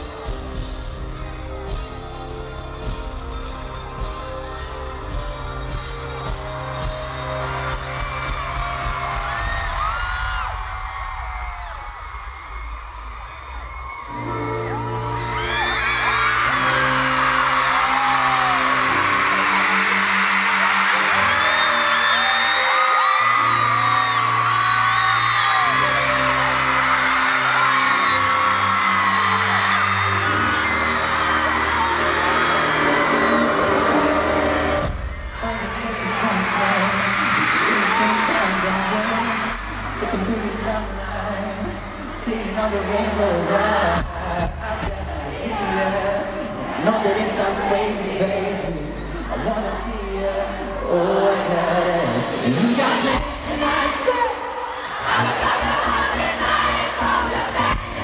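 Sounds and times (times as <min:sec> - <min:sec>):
keyboard and bass chords: 0:00.0 - 0:09.9
drums and bass: 0:00.0 - 0:14.1, 0:33.7 - 0:40.7, 0:42.9 - 0:45.7, 0:51.5 - 0:54.3, 0:56.4 - 0:58.0
crowd screaming and whooping: 0:00.0 - 0:58.0.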